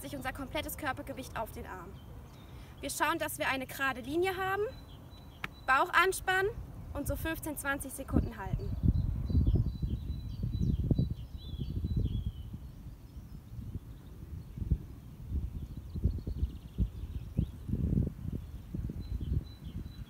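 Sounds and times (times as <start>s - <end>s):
small birds chirping: 0.0s - 20.0s
bird trill: 3.9s - 6.2s
wind buffeting microphone: 4.4s - 20.0s.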